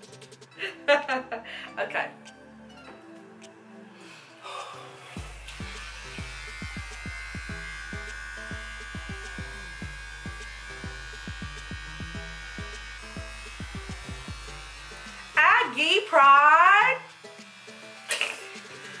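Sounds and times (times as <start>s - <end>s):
background music with a beat: 0.0s - 1.2s, 4.6s - 15.2s
electric hair clippers buzzing: 4.6s - 19.0s.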